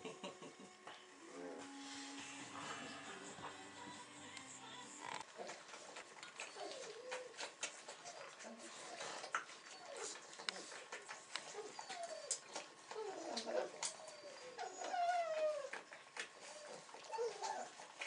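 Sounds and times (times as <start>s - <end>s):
puppies whining and squealing: 4.9s - 18.0s.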